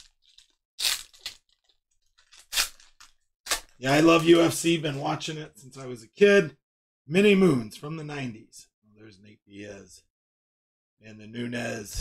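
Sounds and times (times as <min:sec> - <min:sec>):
foil wrapper tearing and crinkling: 0:00.0 - 0:04.4.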